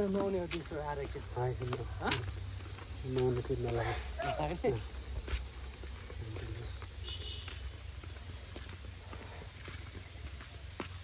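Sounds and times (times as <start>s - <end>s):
footsteps on dirt path: 0.0s - 11.0s.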